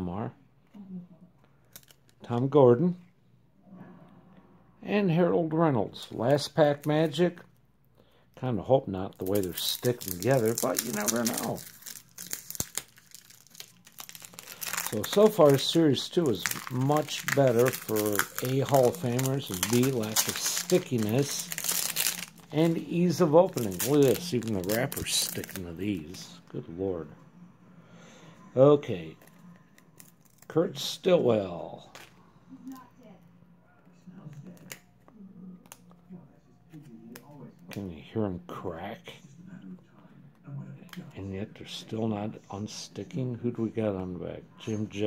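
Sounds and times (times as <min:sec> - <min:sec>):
cards peeled apart with sharp cracks: 0:09.2 - 0:26.2
foil wrapper tearing and crinkling: 0:09.2 - 0:26.3.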